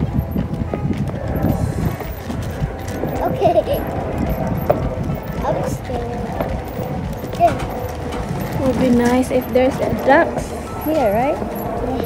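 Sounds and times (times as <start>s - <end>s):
background music: 0.0s - 12.0s
footsteps on dock decking: 0.0s - 12.0s.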